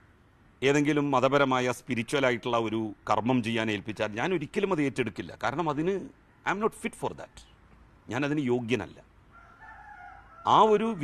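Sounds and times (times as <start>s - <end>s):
man speaking: 0.6s - 9.1s, 10.5s - 11.0s
rooster crowing faintly: 9.3s - 11.0s.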